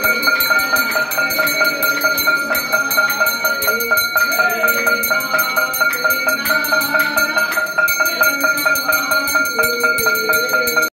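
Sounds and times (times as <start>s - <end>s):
bells rung rapidly: 0.0s - 11.0s
steady ringing tone: 0.0s - 11.0s.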